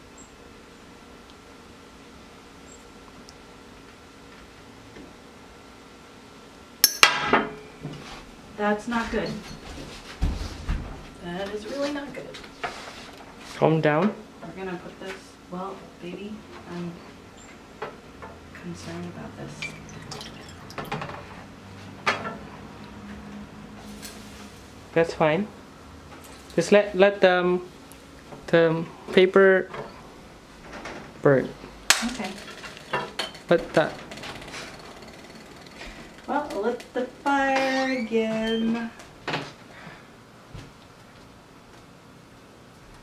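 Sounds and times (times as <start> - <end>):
low steady hum: 0.0 - 43.0
glass bottle cracking: 19.6 - 20.8.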